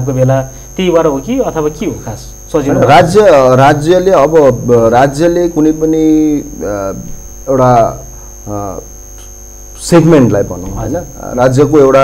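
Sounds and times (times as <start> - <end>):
man talking: 0.0 - 8.9
steady electrical hum: 0.0 - 12.0.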